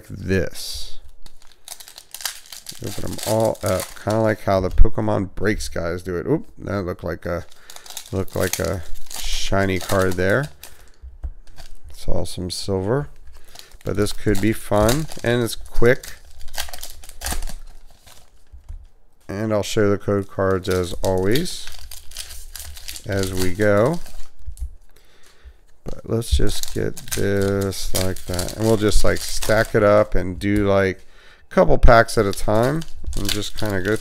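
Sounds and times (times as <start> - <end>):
foil wrapper crinkling and tearing: 1.0 - 4.9, 7.4 - 18.7, 20.0 - 24.6, 26.2 - 30.9, 31.8 - 34.0.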